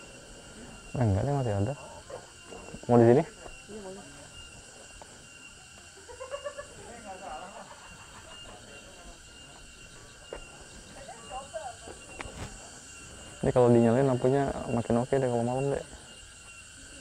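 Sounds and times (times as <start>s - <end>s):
faint voices: 0.0s - 17.0s
high-pitched insect chorus: 0.0s - 17.0s.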